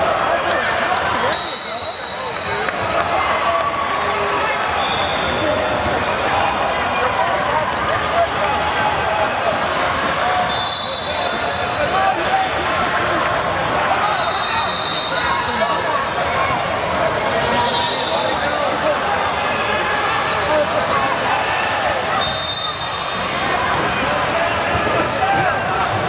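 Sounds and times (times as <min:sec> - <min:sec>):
chatter of many voices: 0:00.0 - 0:26.0.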